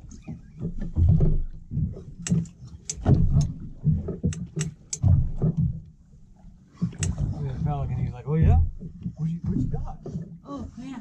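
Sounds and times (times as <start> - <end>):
water knocking against boat hull: 0.0 - 6.0, 6.7 - 11.0.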